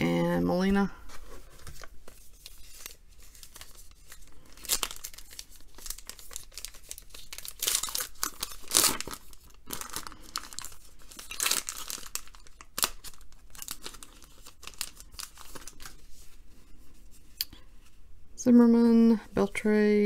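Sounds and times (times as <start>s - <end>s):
foil wrapper tearing and crinkling: 1.8s - 16.0s.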